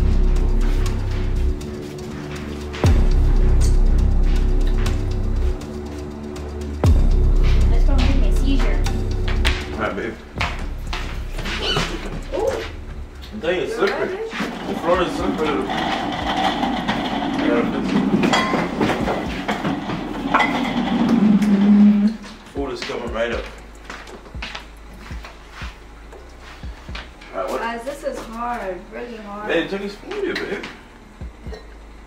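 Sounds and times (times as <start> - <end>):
background music with low bass: 0.0 - 32.0
indistinct voices: 11.4 - 23.6.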